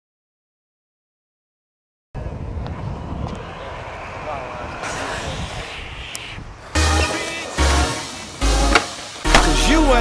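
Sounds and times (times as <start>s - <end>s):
steady rumble of wind or traffic: 2.2s - 9.4s
faint voices: 3.3s - 6.4s.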